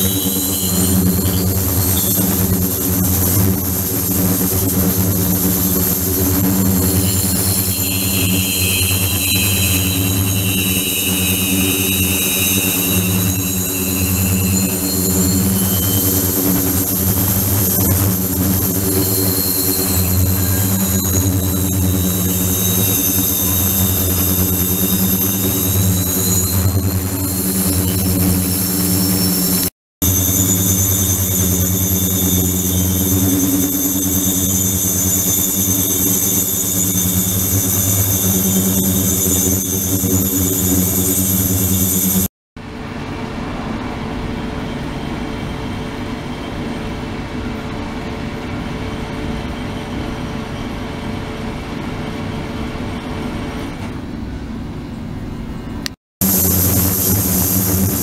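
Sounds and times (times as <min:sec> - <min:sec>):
high whistling tones: 0:00.0 - 0:42.3.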